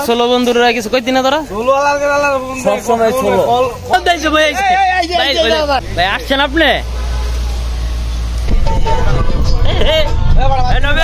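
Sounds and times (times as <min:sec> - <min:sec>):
bus engine rumble: 0:00.0 - 0:11.0
voices: 0:00.0 - 0:11.0.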